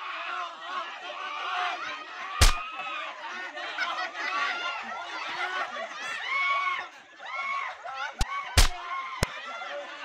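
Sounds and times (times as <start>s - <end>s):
people laughing: 0.3s - 10.0s.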